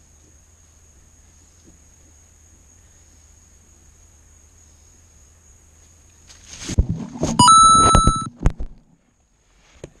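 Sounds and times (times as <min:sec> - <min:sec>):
leaves rustling: 0:06.2 - 0:06.8
electronic beeps: 0:07.4 - 0:08.3.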